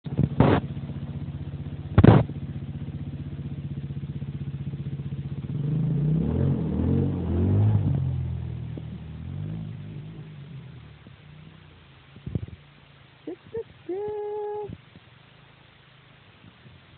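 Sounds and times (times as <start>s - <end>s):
car engine running and revving: 0.0s - 16.9s
loud thumps: 1.9s - 2.4s.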